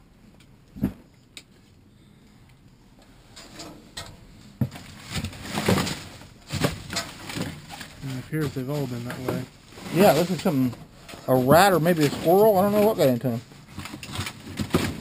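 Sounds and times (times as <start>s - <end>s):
plastic bags and cardboard rustling: 4.3s - 15.0s.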